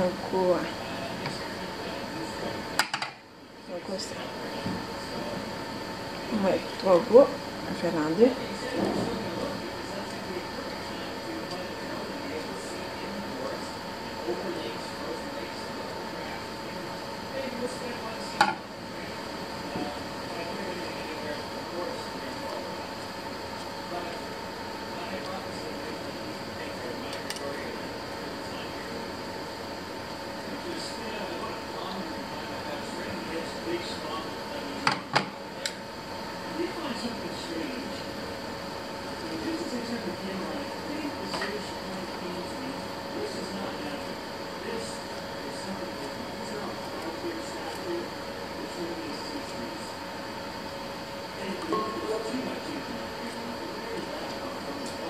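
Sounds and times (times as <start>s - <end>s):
steady hum: 0.0s - 55.0s.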